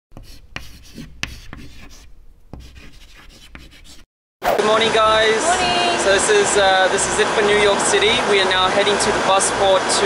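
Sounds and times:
pen writing on paper: 0.2 - 4.0.

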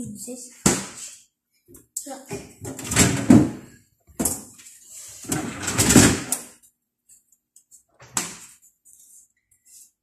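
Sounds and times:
plastic fridge drawers sliding: 5.2 - 6.4.

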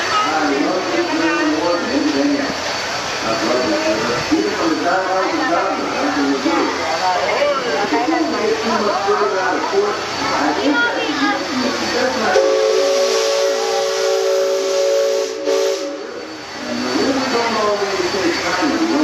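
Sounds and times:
people talking: 0.0 - 12.9, 15.8 - 19.0
steam hissing: 0.0 - 19.0
steam whistle blast: 12.3 - 16.4.

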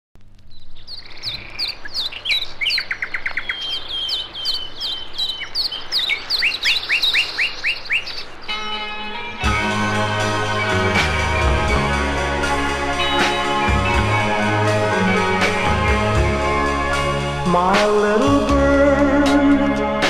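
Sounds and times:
songbird chirps and trills: 0.4 - 19.8
pop band music: 8.5 - 20.0.

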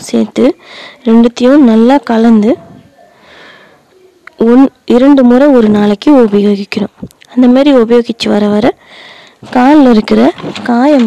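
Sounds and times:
person speaking: 0.0 - 8.8, 9.4 - 11.0
person breathing in: 0.6 - 1.0, 3.1 - 3.9, 8.8 - 9.4.

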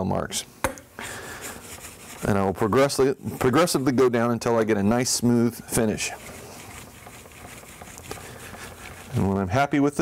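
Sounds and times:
scraper scraping on sharpening plate: 6.0 - 9.2.

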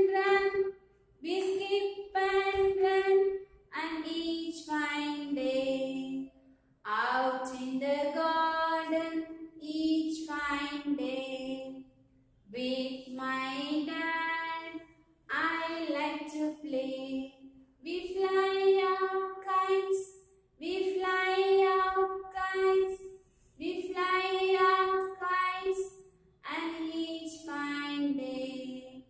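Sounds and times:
woman singing unaccompanied: 0.0 - 6.2, 6.9 - 11.8, 12.5 - 23.0, 23.6 - 29.0.

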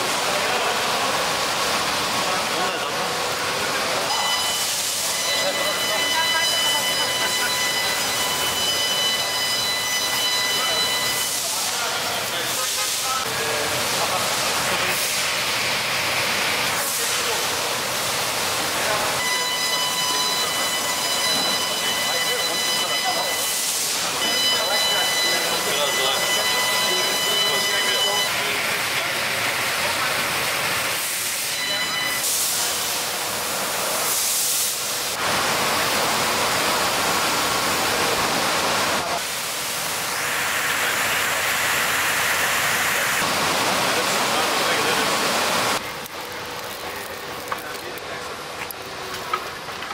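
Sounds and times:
steady loud hiss: 0.0 - 49.8
thin high whine: 18.8 - 28.6, 31.4 - 32.9.

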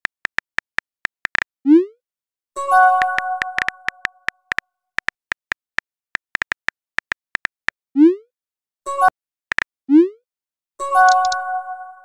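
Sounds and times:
phone keyboard typing clicks: 0.0 - 1.5, 3.0 - 7.7, 11.1 - 11.4.

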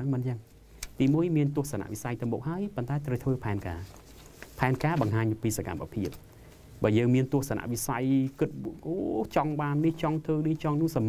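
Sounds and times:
man talking: 0.0 - 4.0, 4.6 - 6.2, 6.8 - 11.0.

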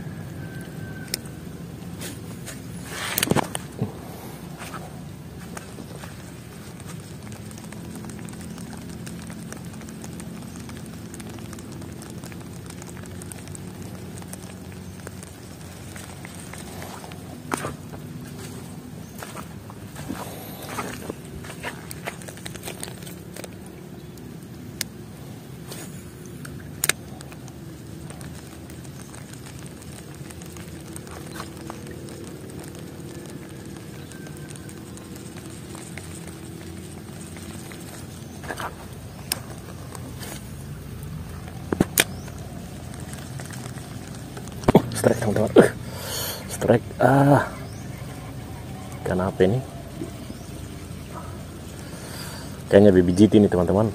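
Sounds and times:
light rain falling on water: 0.0 - 53.9.

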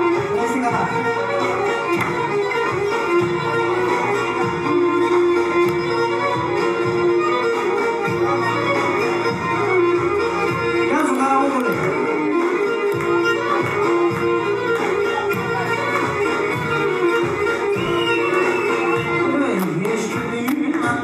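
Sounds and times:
bowed lyra melody: 0.0 - 19.5
rhythmic accompaniment: 0.0 - 21.0.

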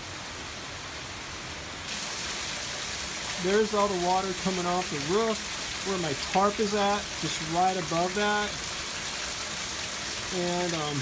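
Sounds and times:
heavy rain hissing: 0.0 - 11.0
water pouring off roof edge: 1.9 - 11.0.

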